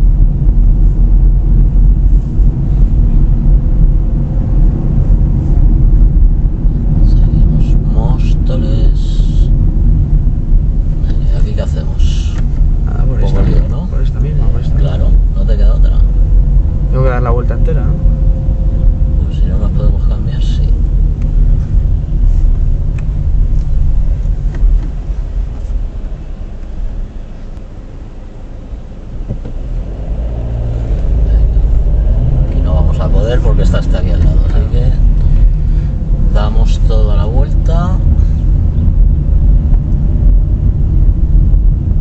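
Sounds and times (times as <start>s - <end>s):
car road and engine rumble: 0.0s - 42.0s
indistinct voices: 11.0s - 21.3s.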